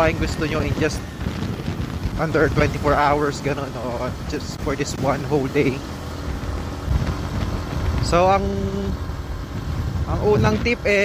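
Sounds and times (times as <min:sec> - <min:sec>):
motorcycle engine rumble: 0:00.0 - 0:11.0
wind noise: 0:00.0 - 0:11.0.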